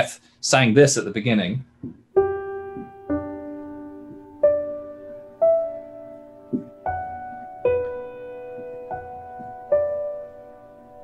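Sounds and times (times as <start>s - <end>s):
piano notes ringing: 1.9s - 11.0s.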